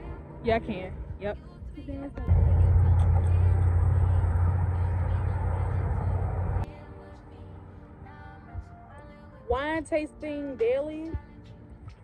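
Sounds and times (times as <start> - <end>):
loud steady low rumble: 2.2 - 6.7.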